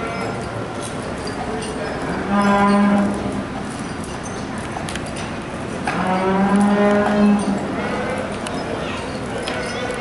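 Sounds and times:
cattle mooing: 5.9 - 8.2.

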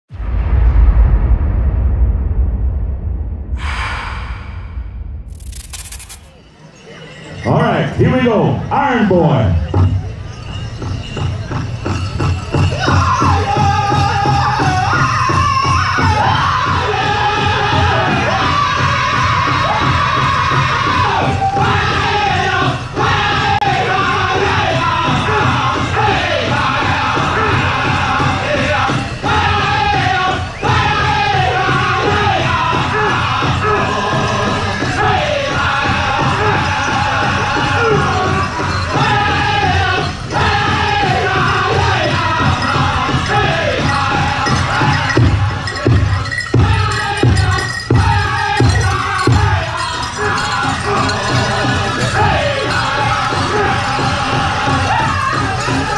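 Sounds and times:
drum group singing in high voices: 10.8 - 55.9
large drum beating in unison: 31.4 - 55.9.

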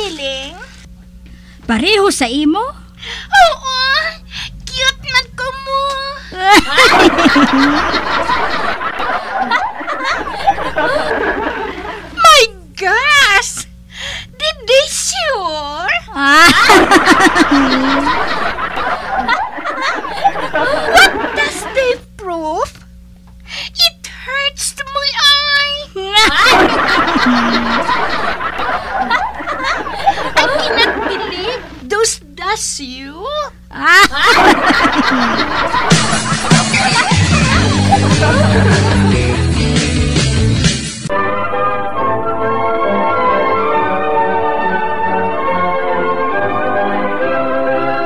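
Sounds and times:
people laughing: 6.2 - 12.4, 16.1 - 22.0, 26.1 - 31.8, 33.7 - 39.6
music: 34.7 - 48.0.

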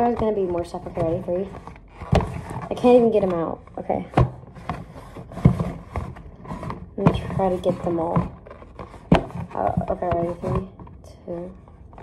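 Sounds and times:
packaging rubbing and rustling: 0.0 - 3.5, 4.3 - 11.0.

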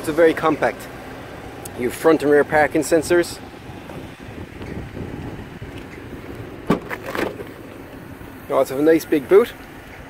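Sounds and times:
tailgate release click: 6.6 - 7.6.

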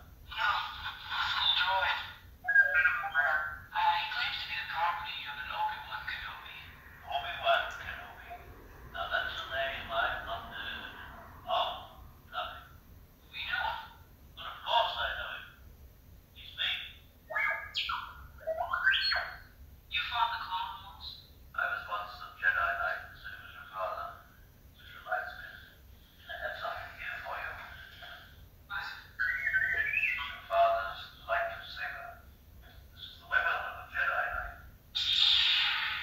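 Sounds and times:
film voices through small speaker: 0.0 - 36.0
chirping electronic beeps and whistles: 29.1 - 30.4.

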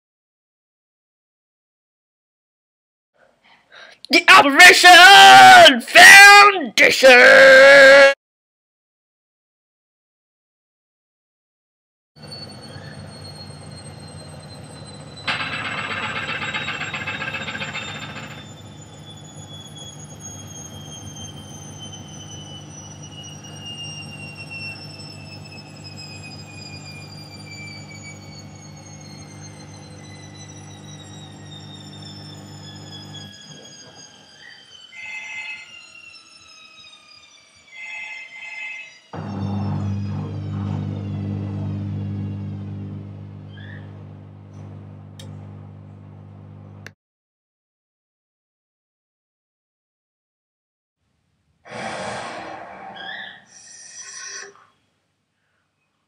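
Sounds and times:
washing machine motor whine: 12.2 - 37.2, 39.2 - 46.9
hiss: 51.7 - 52.6.

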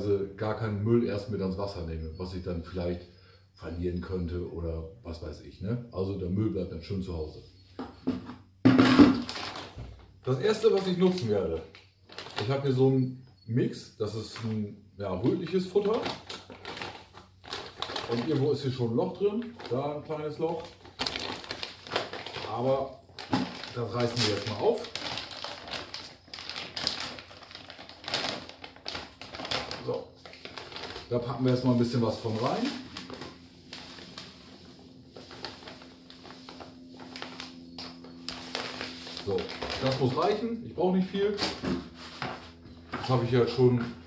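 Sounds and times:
plastic bag rustling: 8.8 - 12.7, 15.3 - 40.4.

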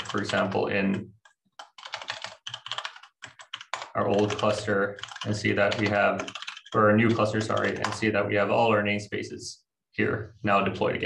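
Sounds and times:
typing on computer keyboard: 0.0 - 8.1.

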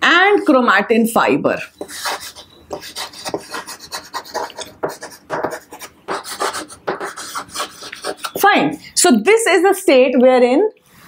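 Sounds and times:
chalk scratching on chalkboard: 1.6 - 8.5.

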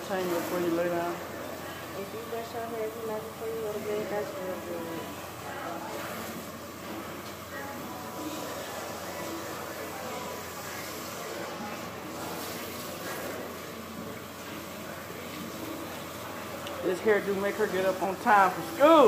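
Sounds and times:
faint voices: 0.0 - 19.0
hand sprayer running water on hair: 0.0 - 19.0.

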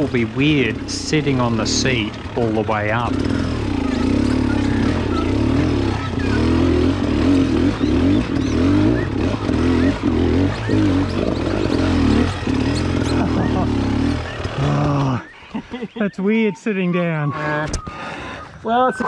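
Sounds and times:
dirt bike engine revving: 0.0 - 16.4.

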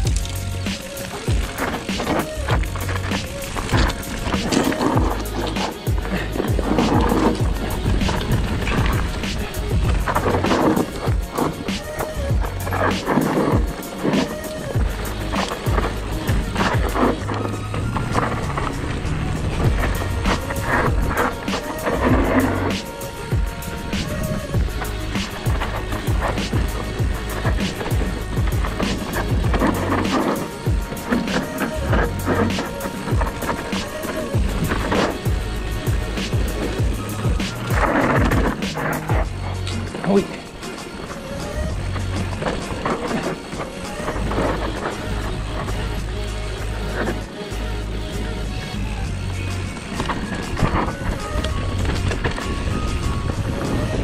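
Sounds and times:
bike clattering over bumps: 0.0 - 48.3, 49.2 - 54.0
bike tyres rolling and rattling: 0.0 - 54.0
music with steady beat: 0.0 - 54.0.

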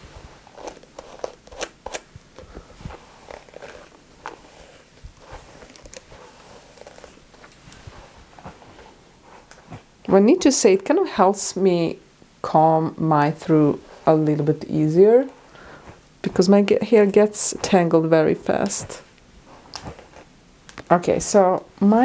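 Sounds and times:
brush drawn through wet hair: 2.8 - 10.0.

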